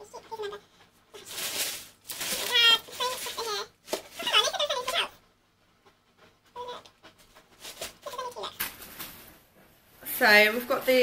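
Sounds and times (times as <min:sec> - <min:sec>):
tissue paper rustling: 0:01.1 - 0:05.1, 0:07.2 - 0:09.4.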